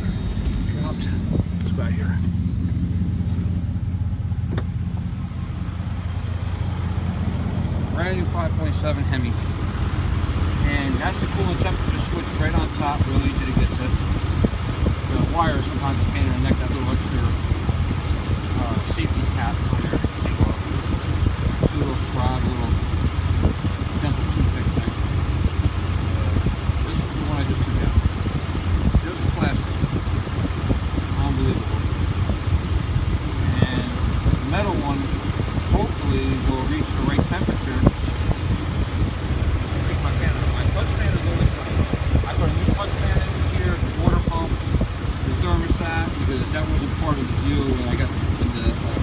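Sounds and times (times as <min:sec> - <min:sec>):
truck engine idling: 0:00.0 - 0:49.0.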